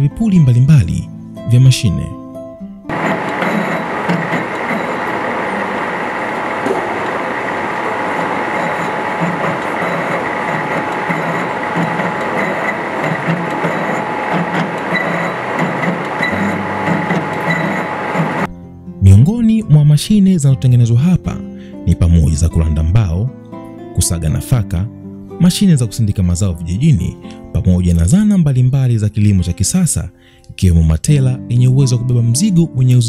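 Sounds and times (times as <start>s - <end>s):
metal lathe running: 2.9s - 18.5s.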